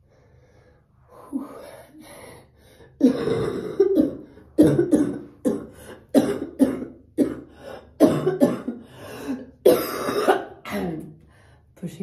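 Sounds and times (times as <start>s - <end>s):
woman coughing harshly: 3.0s - 11.0s.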